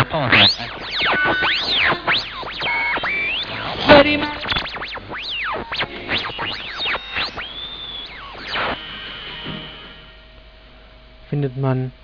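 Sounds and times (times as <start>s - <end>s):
burst of radio noise: 0.0s - 10.2s
radio heterodyne whistles: 0.0s - 10.3s.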